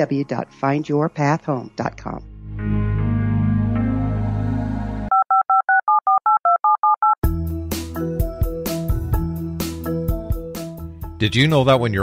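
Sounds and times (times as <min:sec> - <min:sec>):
synthesizer chord: 0:02.0 - 0:05.1
keyboard music with a beat: 0:02.3 - 0:05.2, 0:07.2 - 0:12.0
telephone keypad beeps: 0:05.1 - 0:07.2.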